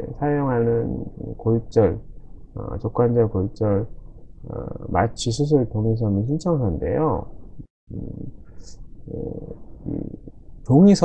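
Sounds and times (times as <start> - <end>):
man murmuring hesitation: 0.0 - 1.9, 2.6 - 3.0, 4.4 - 5.2, 7.9 - 10.4.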